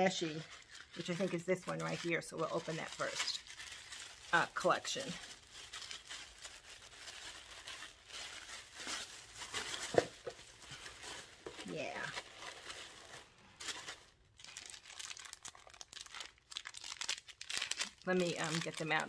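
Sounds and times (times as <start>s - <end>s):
packaging crinkling and tearing: 0.0s - 19.0s.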